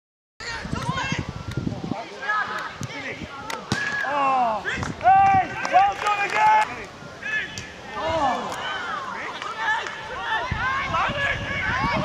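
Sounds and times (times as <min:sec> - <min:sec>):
players shouting: 0:02.1 - 0:12.0.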